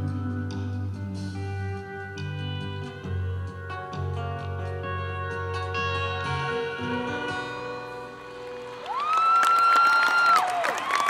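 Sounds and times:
audience applause: 8.4s - 11.0s
person cheering woo: 8.8s - 11.0s.

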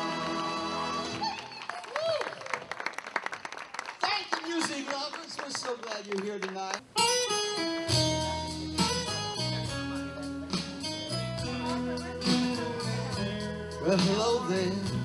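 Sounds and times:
audience cheering: 0.0s - 6.7s
audience applause: 0.2s - 6.8s
band playing guitar and keyboard: 6.9s - 15.0s
live band chord: 6.9s - 15.0s.

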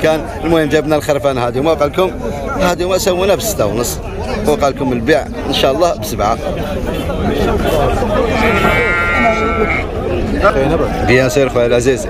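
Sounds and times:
people talking: 0.0s - 12.0s
sheep bleating: 8.2s - 10.0s.

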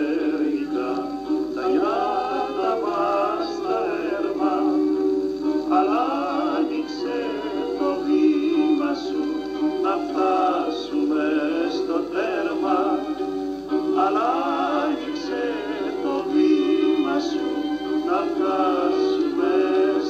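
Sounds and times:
instrumental accompaniment: 0.0s - 20.0s
men singing with vibrato: 0.0s - 20.0s.

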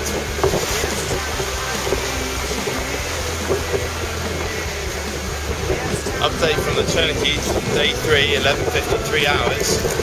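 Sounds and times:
constant low rumble: 0.0s - 10.0s
water running past hull: 0.0s - 10.0s
wind buffeting microphone: 0.0s - 10.0s.

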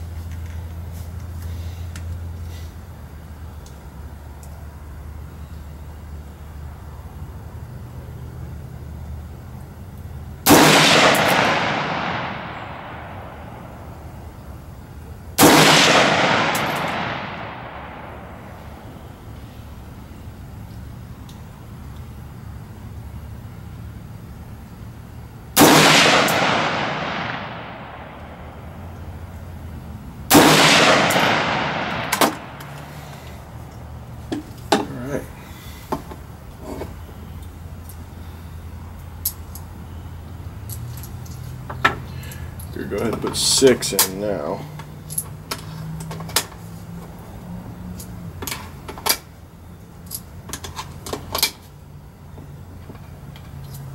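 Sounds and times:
rifle shots with long echo: 10.4s - 14.3s, 15.4s - 19.1s, 25.6s - 29.0s, 30.3s - 33.3s.

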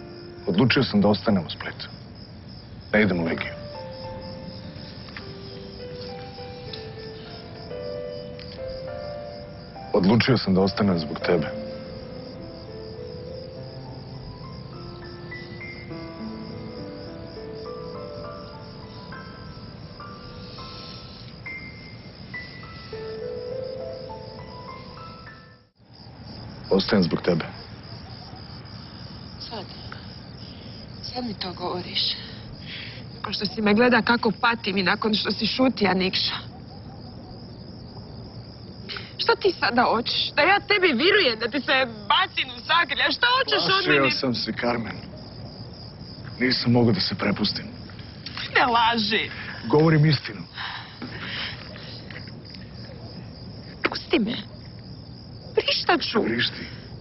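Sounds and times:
crickets chirping: 0.0s - 57.0s.

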